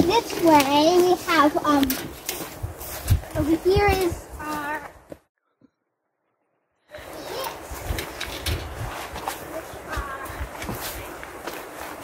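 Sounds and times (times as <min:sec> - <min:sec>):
footsteps through greenery: 0:00.0 - 0:05.3, 0:07.0 - 0:12.0.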